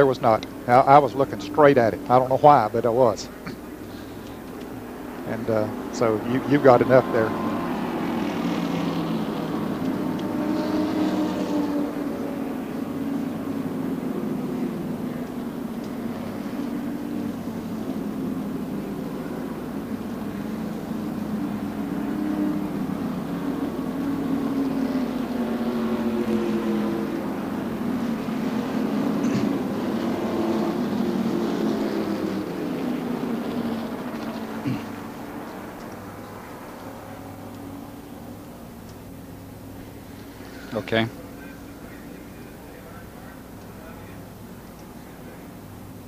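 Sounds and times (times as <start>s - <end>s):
race car engines droning: 0.0s - 46.0s.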